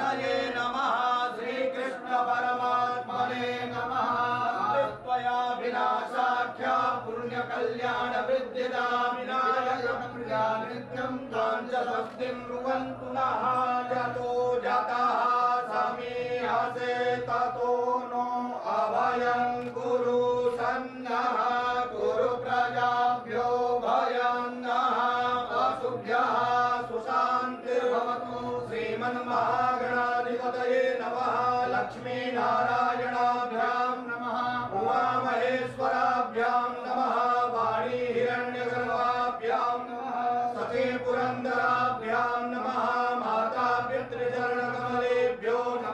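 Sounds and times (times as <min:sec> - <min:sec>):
men chanting: 0:00.0 - 0:45.9.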